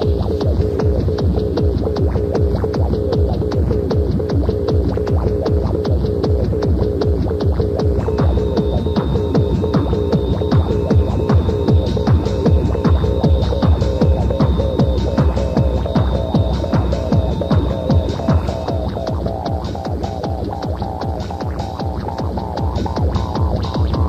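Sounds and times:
repeating synth riff: 0:00.0 - 0:24.0
techno kick-drum beat: 0:00.0 - 0:24.0.

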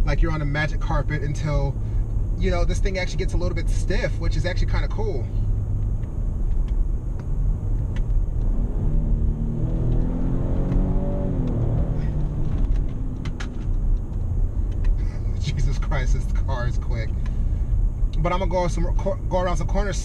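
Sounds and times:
road and tyre rumble: 0:00.0 - 0:20.0
car engine rising in pitch: 0:05.3 - 0:18.1.

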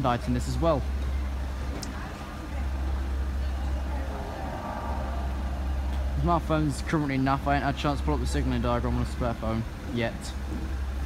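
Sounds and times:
idling road traffic rumble: 0:00.0 - 0:11.0
vehicle passing: 0:02.7 - 0:08.7.

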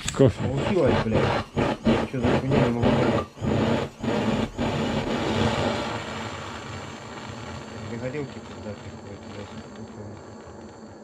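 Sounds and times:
gas torch flame hissing: 0:00.0 - 0:11.0.

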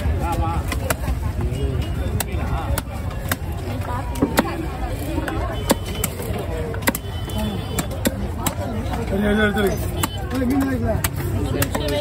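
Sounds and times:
knife chopping on wooden block: 0:05.2 - 0:07.1.

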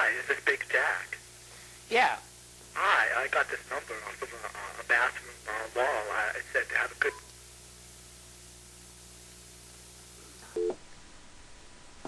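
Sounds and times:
faint telephone line hum: 0:00.0 - 0:10.9.

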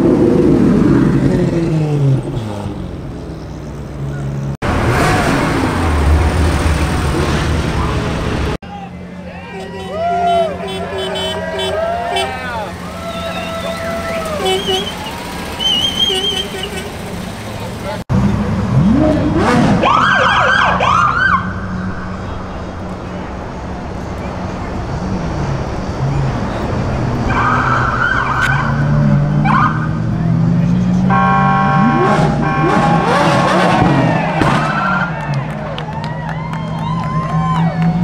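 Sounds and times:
car engines rumbling: 0:00.0 - 0:38.0
police siren yelps: 0:19.8 - 0:21.6, 0:27.3 - 0:28.8, 0:29.4 - 0:30.0
stuttering horn-like tone: 0:31.1 - 0:33.3.

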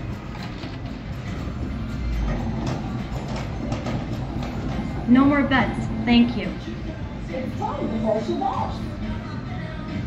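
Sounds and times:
background music: 0:00.0 - 0:10.0
room noise: 0:00.0 - 0:10.0.

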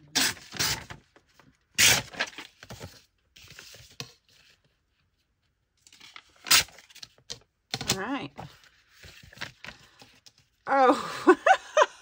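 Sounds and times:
paper tearing: 0:01.8 - 0:02.5, 0:06.4 - 0:07.0
paper crackling and rustling: 0:05.8 - 0:10.4.

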